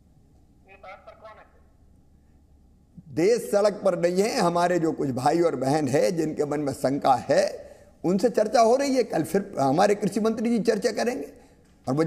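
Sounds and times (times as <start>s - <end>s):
low steady background hum: 0.0s - 12.0s
person speaking: 0.6s - 1.8s.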